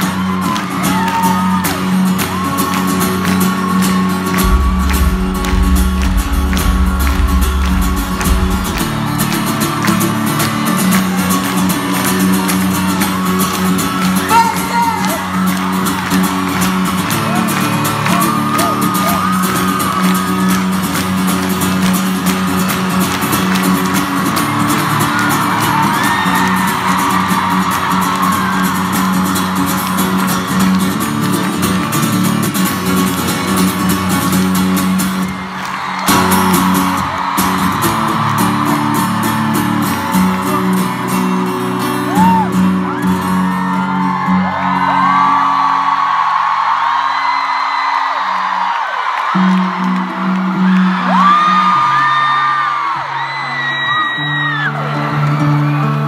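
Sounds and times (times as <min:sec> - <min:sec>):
live band music over sound system: 0:00.0 - 0:45.3
crowd voices and whoops: 0:00.0 - 0:56.0
deep bass note: 0:04.4 - 0:10.3.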